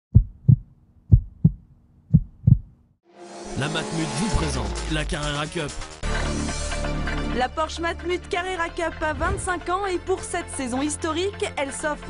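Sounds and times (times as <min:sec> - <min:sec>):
heartbeat thumps: 0:00.1 - 0:02.8.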